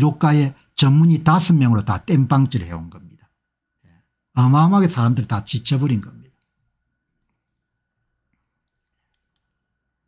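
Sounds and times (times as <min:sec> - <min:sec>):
very faint clicks: 0:08.3 - 0:09.6.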